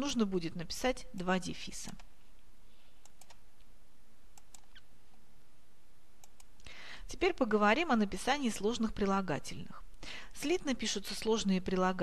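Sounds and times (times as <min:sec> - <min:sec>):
background hiss: 0:01.6 - 0:08.8, 0:09.6 - 0:10.7.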